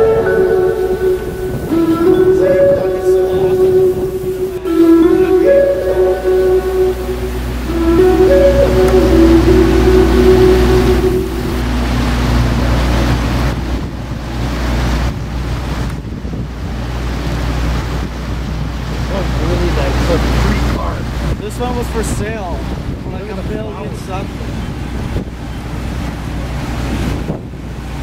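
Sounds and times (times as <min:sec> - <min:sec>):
held song notes: 0:00.0 - 0:15.8
drone of speedboats and jet skis: 0:00.0 - 0:28.0
wind buffeting microphone: 0:00.0 - 0:28.0.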